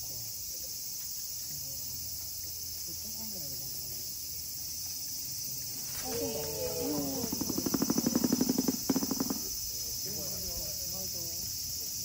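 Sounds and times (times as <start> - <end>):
cicadas droning: 0.0 - 12.0
faint human voices: 5.9 - 7.7.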